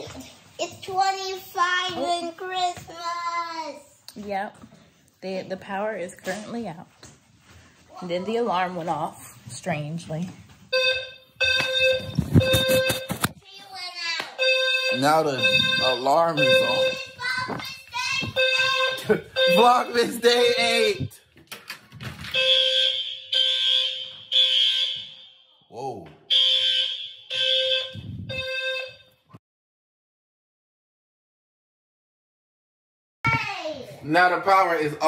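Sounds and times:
electronic alarm tone: 10.7s - 13.2s, 14.4s - 17.1s, 18.4s - 21.1s, 26.3s - 29.1s.

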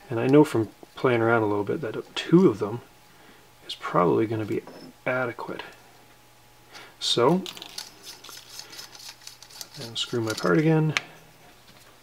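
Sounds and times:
metallic clicks and scrapes of threads: 7.5s - 10.7s.

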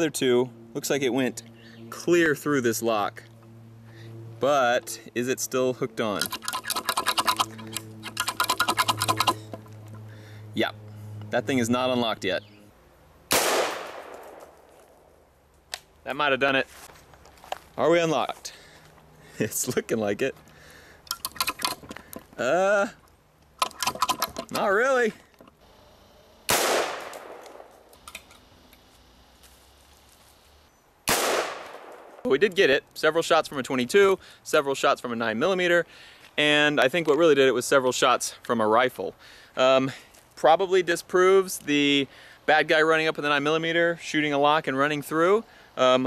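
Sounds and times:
padlock rattling metal clicks: 6.2s - 10.0s, 21.0s - 22.3s, 23.0s - 24.7s
rifle shots with echo: 13.3s - 14.6s, 26.5s - 27.7s, 31.1s - 32.3s.

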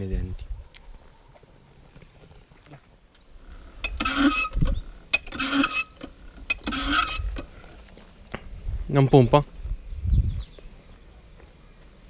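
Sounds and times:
hand pump handle rasping: 3.8s - 7.6s.

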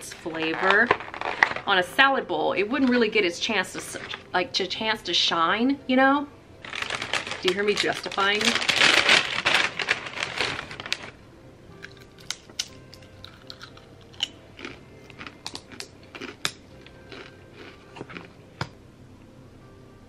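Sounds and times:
paper bag crinkling: 0.0s - 2.0s, 6.6s - 11.2s.

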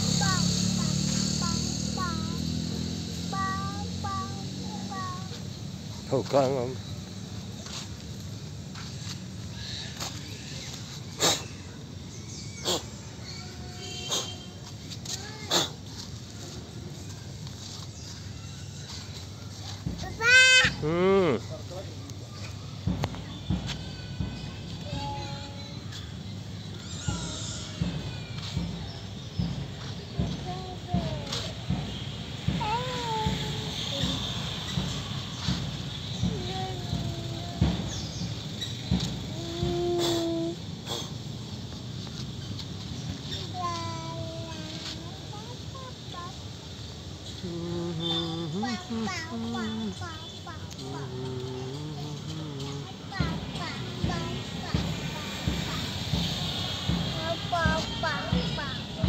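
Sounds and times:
low outdoor rumble: 0.0s - 59.0s
soft low knocks: 27.1s - 40.7s.

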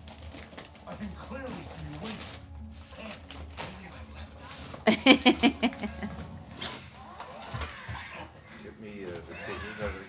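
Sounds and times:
wrapping paper crinkling and tearing: 0.0s - 4.9s.

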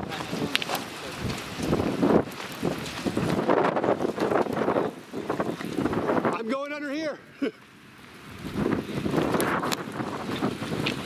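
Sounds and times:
strong wind gusting on microphone: 0.0s - 6.8s, 8.1s - 11.0s.

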